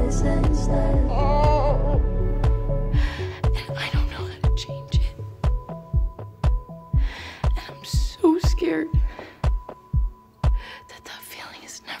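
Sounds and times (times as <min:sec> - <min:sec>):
deep heavy beat thumps: 0:00.0 - 0:10.6.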